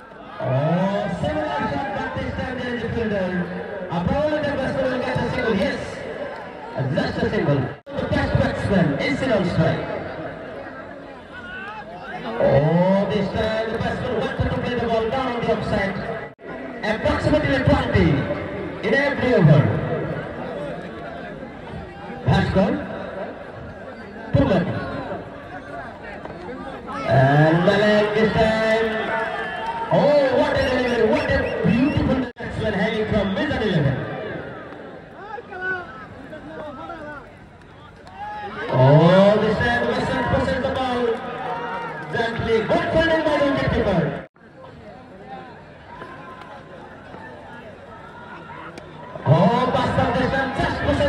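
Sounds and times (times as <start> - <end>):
crowd murmur: 0.0 - 32.0, 32.7 - 51.0.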